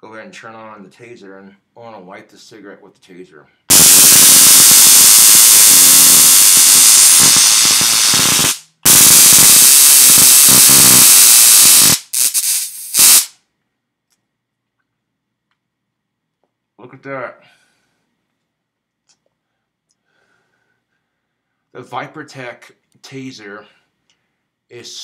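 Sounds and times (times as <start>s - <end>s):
stun gun electric crackle: 3.7s - 13.4s.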